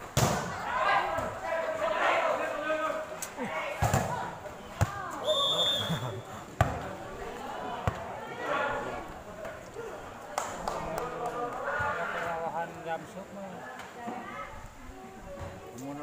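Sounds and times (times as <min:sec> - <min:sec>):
short high whistle: 0:05.2 - 0:06.2.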